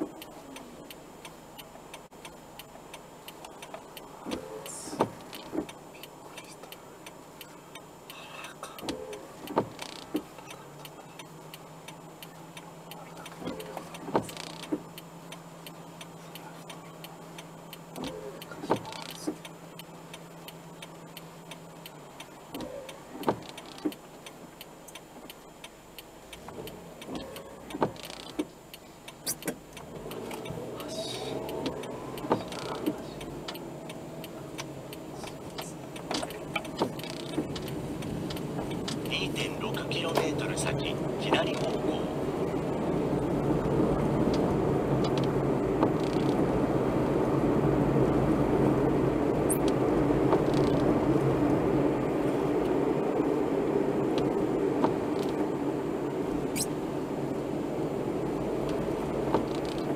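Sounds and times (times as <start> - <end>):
windscreen wipers knocking: 0.0 - 1.0, 1.6 - 59.9
low steady hum: 0.0 - 59.9.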